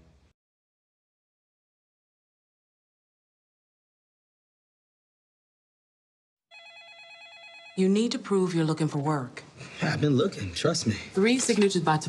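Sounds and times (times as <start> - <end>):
electronic telephone ringer trilling: 6.5 - 8.0.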